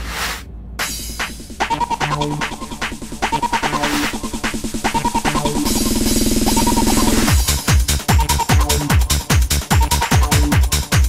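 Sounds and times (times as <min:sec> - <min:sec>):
fast snare roll: 0:00.0 - 0:07.9
steady drum beat: 0:00.0 - 0:11.0.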